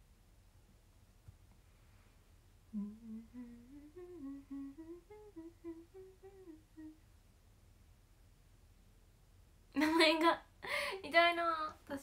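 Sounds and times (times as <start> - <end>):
woman humming a tune: 2.7 - 7.1.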